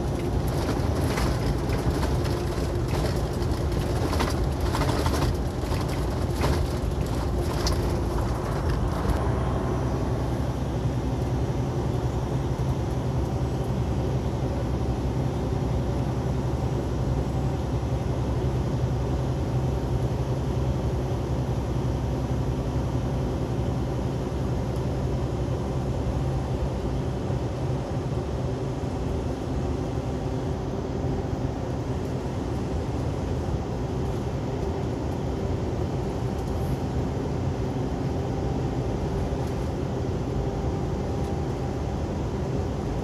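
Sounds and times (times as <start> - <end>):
tyre and road noise: 0.0 - 10.5
diesel truck engine drone: 0.0 - 43.0.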